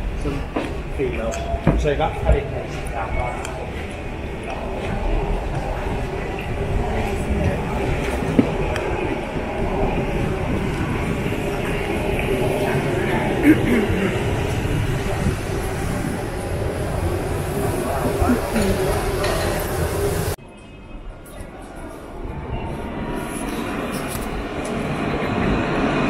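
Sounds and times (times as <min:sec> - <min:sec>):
low city rumble and hum: 0:00.0 - 0:26.0
murmur of passers-by: 0:00.0 - 0:26.0.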